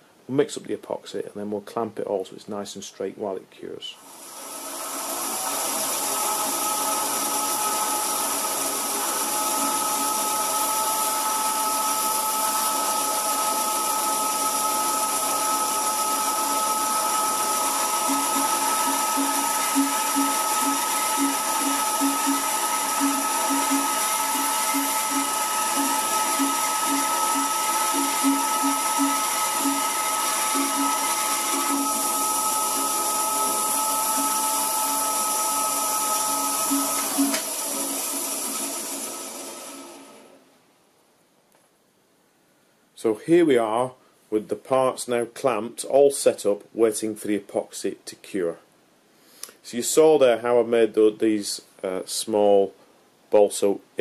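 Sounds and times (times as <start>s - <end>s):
bandsaw whining: 4.0s - 40.4s
low pulses of wood cutting: 4.1s - 40.2s.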